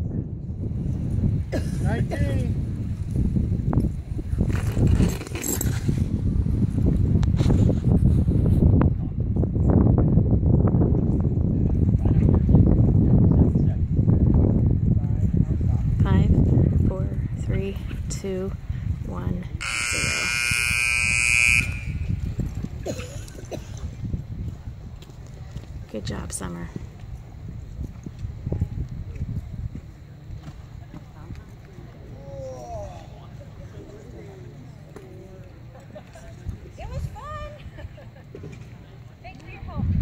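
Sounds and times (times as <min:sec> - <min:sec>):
wind rumbling on microphone: 0:00.0 - 0:40.0
short pitched calls: 0:19.6 - 0:22.2
arena time buzzer: 0:19.6 - 0:22.3.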